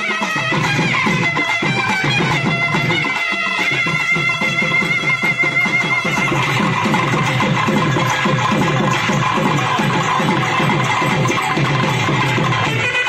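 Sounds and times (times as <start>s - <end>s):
drum beating fast rhythm: 0.0s - 13.0s.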